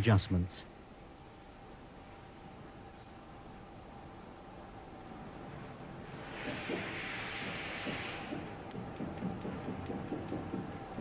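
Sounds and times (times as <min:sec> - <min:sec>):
hiss: 0:06.0 - 0:10.7
labelling machine knocking and rumbling: 0:06.1 - 0:11.0.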